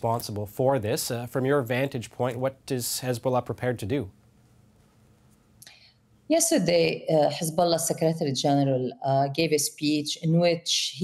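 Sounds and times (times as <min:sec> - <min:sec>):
man speaking: 0:00.0 - 0:04.2
woman speaking: 0:06.3 - 0:11.0.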